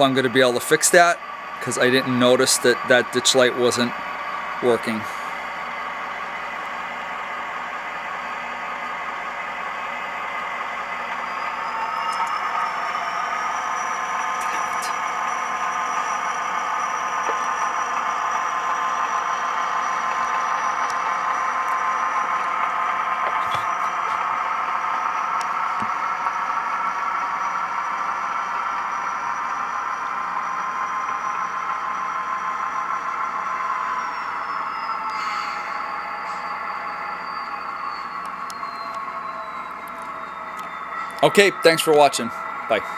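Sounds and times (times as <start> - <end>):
high turbo whine: 0.0 - 42.9
model diesel engine sound: 0.0 - 42.9.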